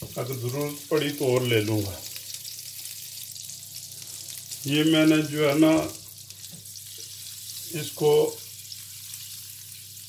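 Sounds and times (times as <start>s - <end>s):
fat sizzling in grill pan: 0.0s - 10.0s.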